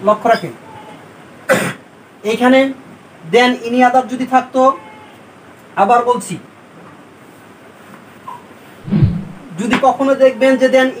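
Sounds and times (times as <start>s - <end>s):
man coughing: 1.5s - 1.8s.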